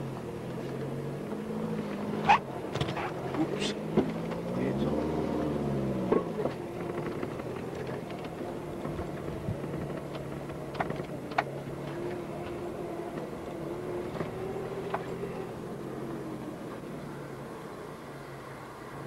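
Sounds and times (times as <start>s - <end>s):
vehicle engine running: 0.0s - 19.0s.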